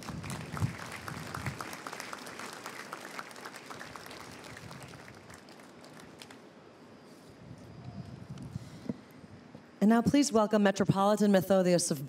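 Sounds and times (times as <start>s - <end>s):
audience applauding: 0.0s - 6.5s.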